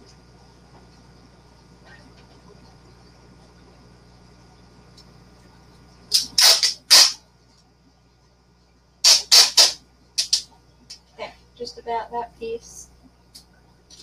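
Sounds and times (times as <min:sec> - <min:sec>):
packaging tape pulled off roll: 0:06.1 - 0:07.2, 0:09.0 - 0:10.4.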